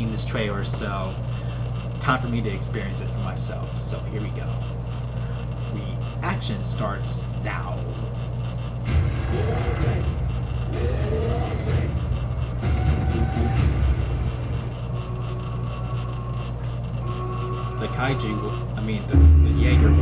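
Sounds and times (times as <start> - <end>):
deep low rumble: 8.5 - 17.7, 19.0 - 20.0
gliding pitched sound effects: 17.1 - 20.0.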